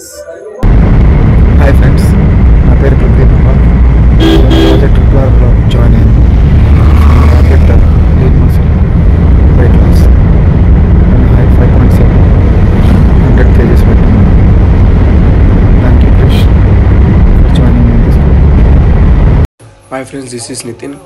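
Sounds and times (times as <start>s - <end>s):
car cabin road rumble: 0.6s - 19.5s
man talking: 1.6s - 6.2s, 7.2s - 8.7s, 9.5s - 10.1s, 11.1s - 12.2s, 13.1s - 14.4s, 15.8s - 16.6s, 17.4s - 18.2s.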